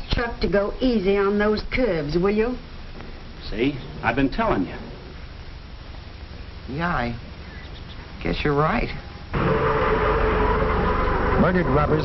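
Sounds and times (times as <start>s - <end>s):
motor vehicle running: 9.3s - 12.0s.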